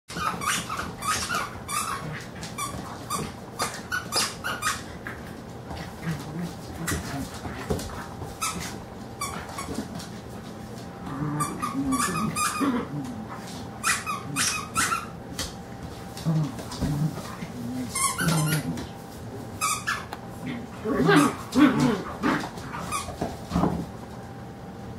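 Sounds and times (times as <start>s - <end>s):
dogs making play noises: 0.1s - 24.1s.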